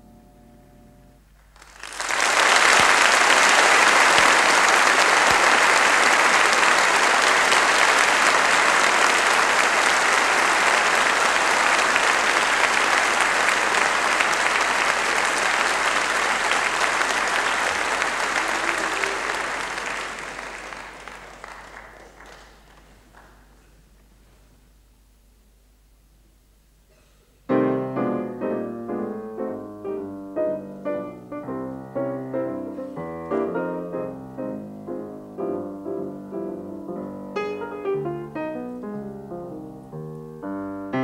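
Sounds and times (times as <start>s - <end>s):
audience applauding: 1.4s - 23.9s.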